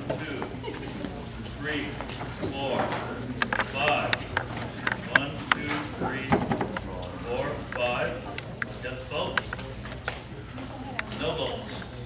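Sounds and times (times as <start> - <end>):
indistinct talk of people: 0.0 - 12.0.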